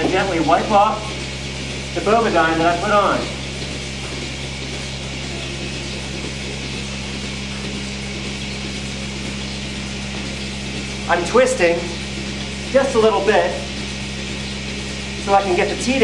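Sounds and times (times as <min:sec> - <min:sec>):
barn machinery humming: 0:00.0 - 0:16.0.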